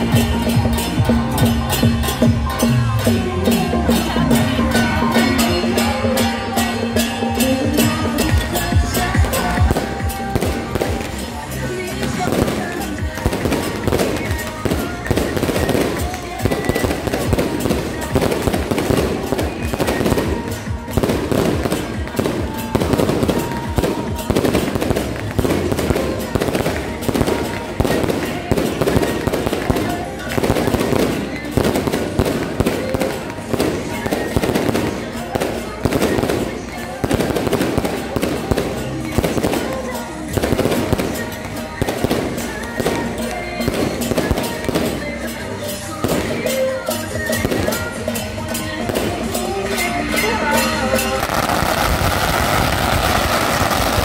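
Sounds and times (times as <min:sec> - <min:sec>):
drum: 0:00.0 - 0:36.3
hand cymbals clattering: 0:00.0 - 0:53.1.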